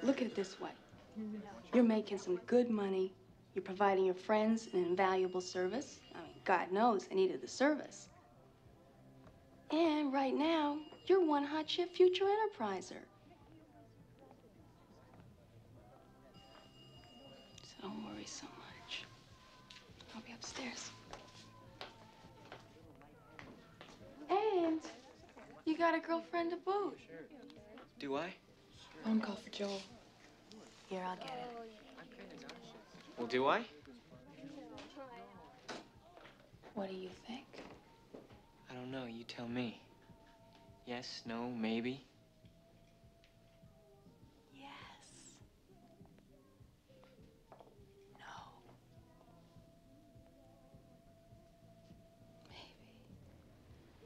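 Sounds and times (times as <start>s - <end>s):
woman whispering softly: 44.5s - 45.4s, 48.0s - 49.3s, 52.4s - 53.1s.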